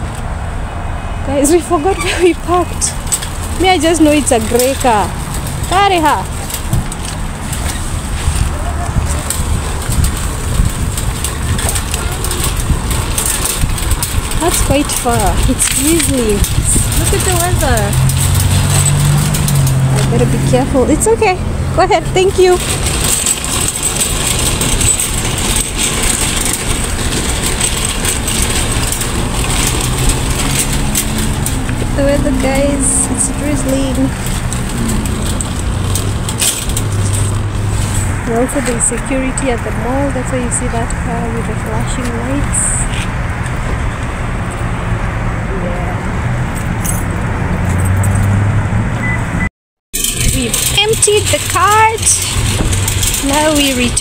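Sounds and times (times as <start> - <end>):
vehicle engine hum: 0.0 - 54.0
voice: 1.3 - 3.0, 3.6 - 5.1, 5.7 - 6.3, 14.4 - 18.1, 20.0 - 22.7, 32.0 - 34.2, 38.3 - 43.0, 45.5 - 46.0, 50.2 - 52.4, 53.2 - 54.0
shopping cart rattling over asphalt: 1.3 - 44.8, 49.9 - 54.0.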